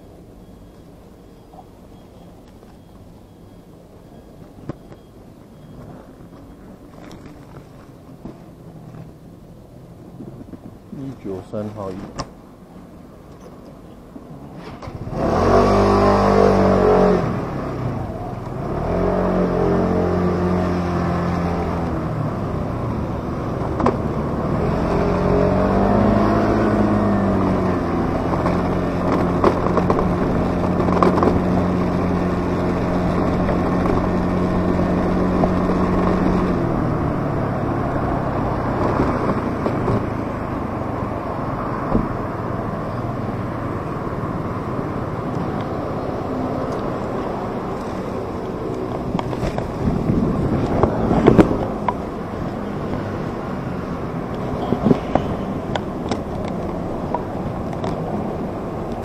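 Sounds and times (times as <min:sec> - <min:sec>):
vehicle engine revving: 0:14.7 - 0:59.0.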